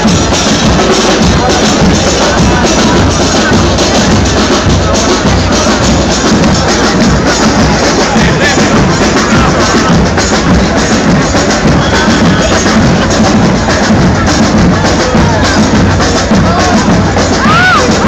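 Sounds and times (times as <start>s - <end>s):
crowd chatter: 0.0s - 18.0s
percussion-led music: 0.0s - 18.0s.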